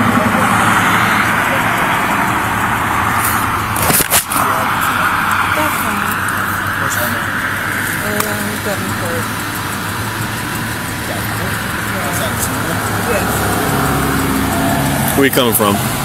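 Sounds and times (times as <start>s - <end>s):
car engine idling: 0.0s - 16.0s
passing vehicle road noise: 0.0s - 16.0s.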